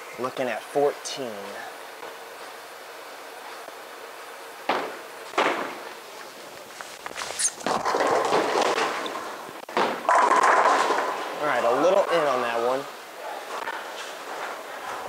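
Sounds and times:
sharp knocks: 0:04.7 - 0:05.9, 0:07.6 - 0:11.2
bowling ball rolling down lane: 0:07.3 - 0:12.3.

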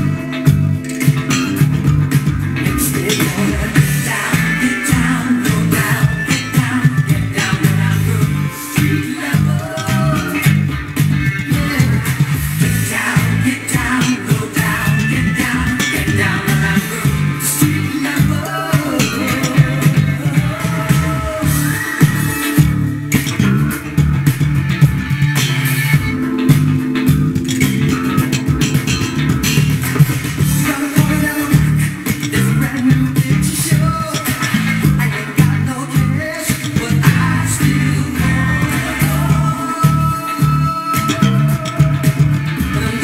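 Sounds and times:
funk backing track: 0:00.0 - 0:43.0
slap bass funk line: 0:00.0 - 0:43.0.

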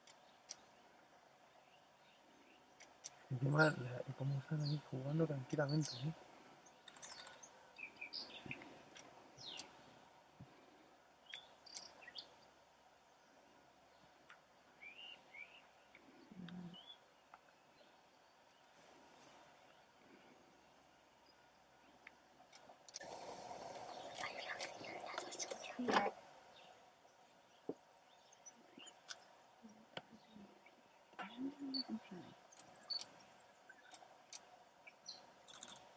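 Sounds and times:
small birds chirping: 0:00.0 - 0:35.9
low murmur of a voice: 0:16.2 - 0:16.8, 0:29.6 - 0:32.4
steady hiss: 0:18.6 - 0:30.0.

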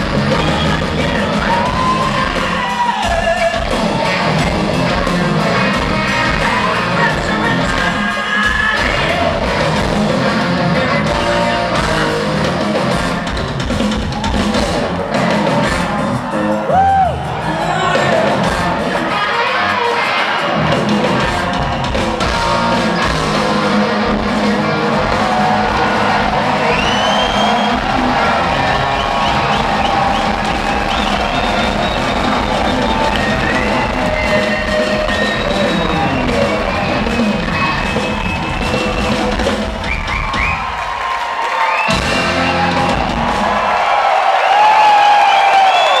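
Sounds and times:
crowd whooping and cheering: 0:00.0 - 0:46.0
live rock band playing: 0:00.0 - 0:46.0.

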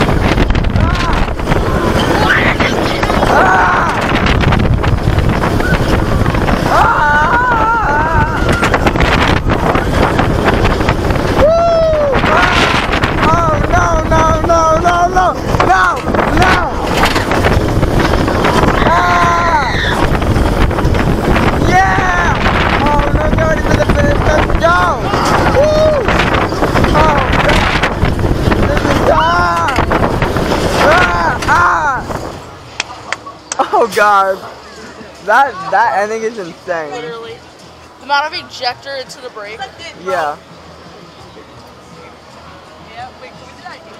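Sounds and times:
wind rushing on microphone: 0:00.0 - 0:32.8
roller coaster rumble: 0:00.0 - 0:43.9
riders screaming and whooping: 0:00.4 - 0:32.4.

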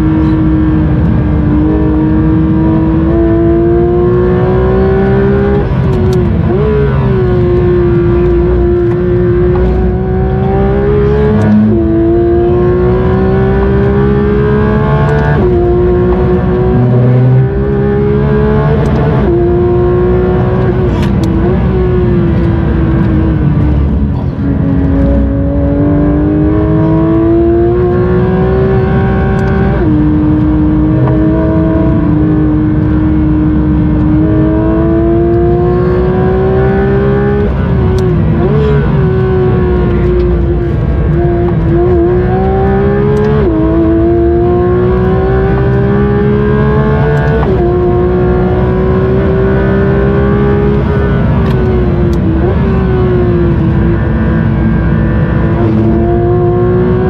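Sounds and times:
car engine revving hard: 0:00.0 - 0:57.0.

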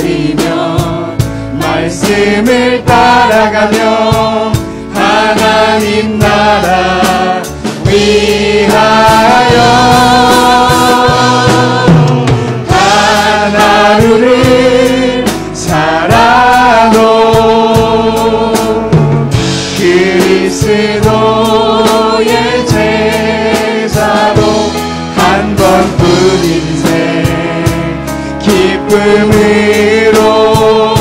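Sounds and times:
group vocals: 0:00.0 - 0:31.0
instrumental backing: 0:00.0 - 0:31.0
man singing with vibrato: 0:12.7 - 0:19.1, 0:19.7 - 0:31.0.

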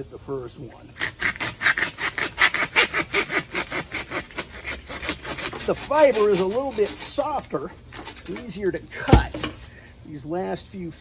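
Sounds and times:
hand saw cutting bamboo: 0:00.9 - 0:09.6.

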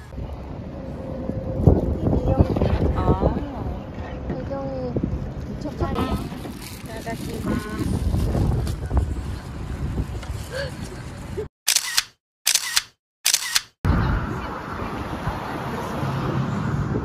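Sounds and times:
outdoor background noise: 0:00.0 - 0:17.0
camera shutter clicks: 0:11.7 - 0:13.8.

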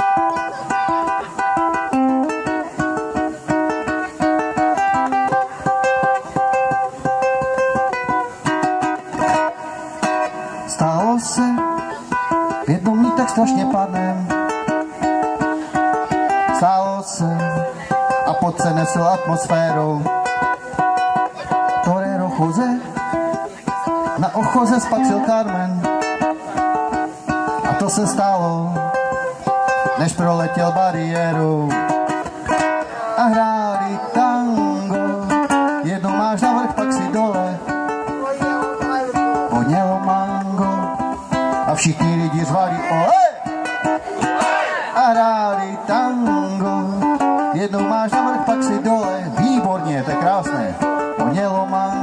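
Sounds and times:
man singing: 0:00.0 - 0:52.0
strummed acoustic string instrument: 0:00.0 - 0:52.0.

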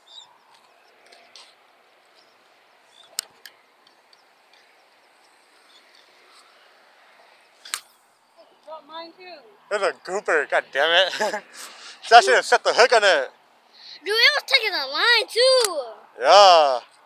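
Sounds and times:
faint background noise: 0:00.0 - 0:17.0.

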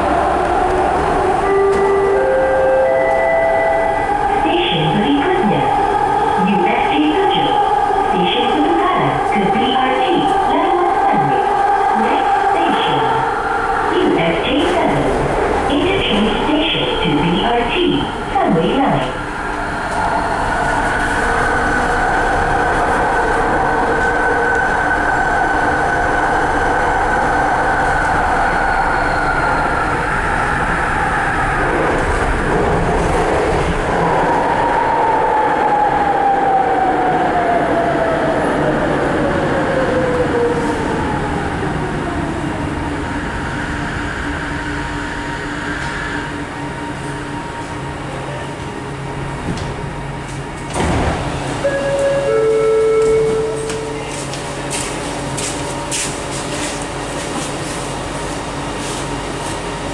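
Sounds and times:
train running noise: 0:00.0 - 0:35.8, 0:37.4 - 0:59.9.

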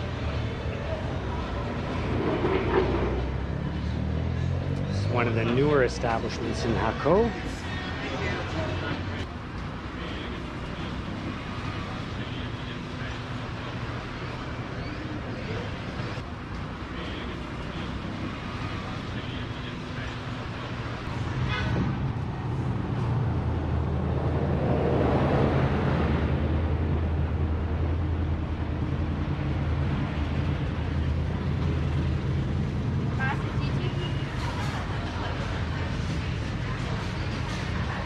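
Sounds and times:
road noise: 0:00.0 - 0:38.0.

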